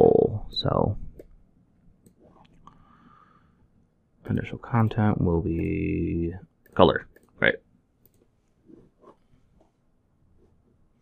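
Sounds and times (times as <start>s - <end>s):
computer mouse clicks: 8.0s - 8.3s.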